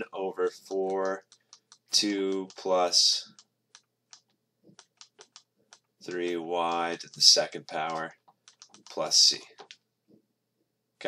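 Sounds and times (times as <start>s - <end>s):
stylus tapping on tablet: 0.5s - 9.8s.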